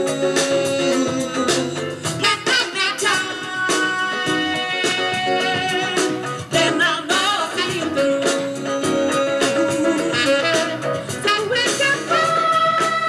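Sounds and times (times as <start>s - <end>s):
electric keyboard: 0.0s - 13.0s
percussion: 0.0s - 13.0s
saxophone: 0.0s - 13.0s
vocal group singing: 0.0s - 13.0s.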